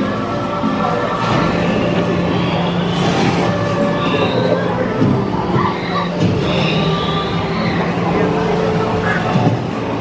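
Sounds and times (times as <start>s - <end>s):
boat ride background ambience: 0.0s - 10.0s
low voices: 0.0s - 10.0s.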